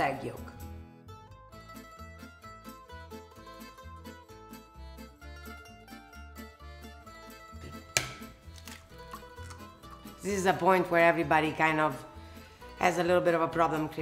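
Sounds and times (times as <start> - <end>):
plucked string music with bass: 0.6 - 11.4
sharp knock: 8.0 - 8.3.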